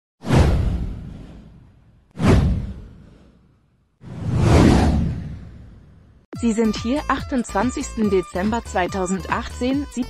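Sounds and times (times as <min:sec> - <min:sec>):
deep whoosh sliding down: 0:04.0 - 0:06.0.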